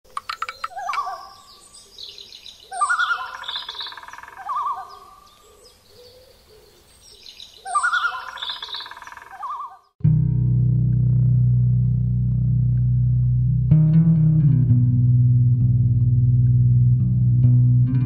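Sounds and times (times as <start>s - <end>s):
sharp clicks: 0.1s - 1.1s
high bird chirps: 0.1s - 6.2s, 7.0s - 10.0s
birds trilling calls: 0.1s - 10.0s.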